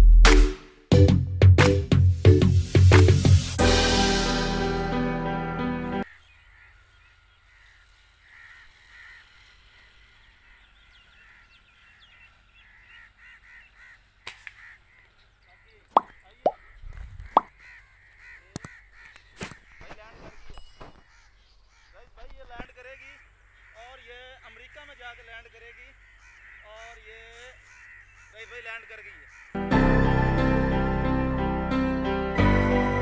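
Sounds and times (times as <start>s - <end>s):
birds chirping and trilling: 5.9s - 30.1s
crow-like calls: 6.0s - 30.3s.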